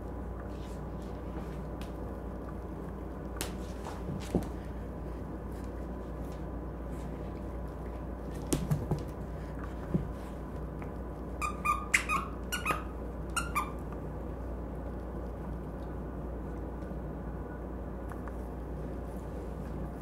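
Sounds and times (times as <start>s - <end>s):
squeaky toy squeaks: 11.4s - 13.8s.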